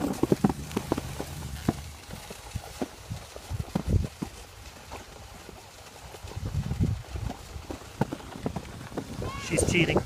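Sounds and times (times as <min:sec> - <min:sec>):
skis scraping over snow: 0:00.0 - 0:10.0.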